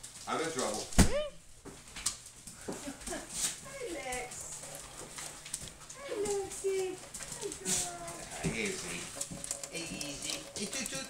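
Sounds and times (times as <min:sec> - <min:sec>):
faucet water running into sink: 0:08.4 - 0:11.0.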